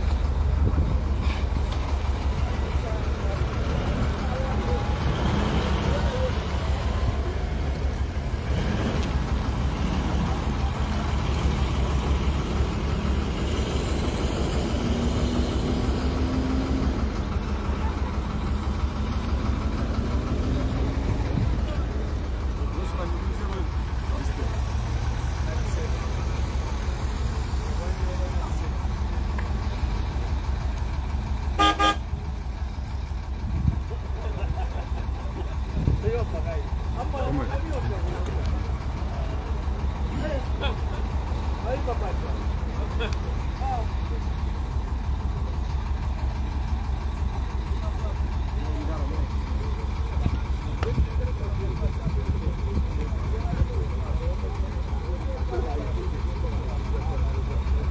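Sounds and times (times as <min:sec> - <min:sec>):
truck engines low rumble: 0:00.0 - 0:57.9
car horn toot: 0:31.6 - 0:32.2.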